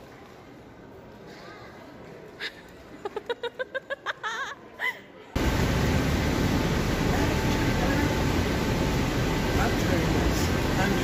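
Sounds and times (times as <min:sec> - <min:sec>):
city bus running noise: 0:05.4 - 0:11.0.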